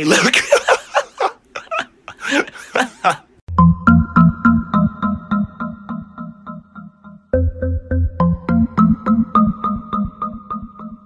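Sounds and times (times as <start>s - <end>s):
man laughing hard: 0.0s - 3.4s.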